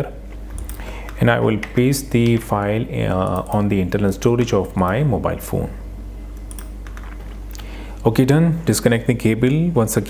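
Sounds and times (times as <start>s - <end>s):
steady low hum: 0.0s - 10.0s
computer clicks: 6.4s - 7.7s.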